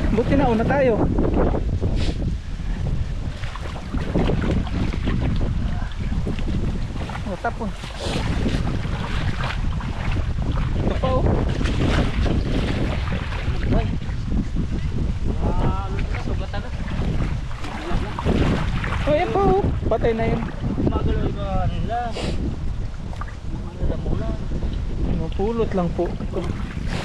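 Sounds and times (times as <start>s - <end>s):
water splashing and sloshing: 0.0s - 27.0s
wind buffeting microphone: 0.0s - 27.0s.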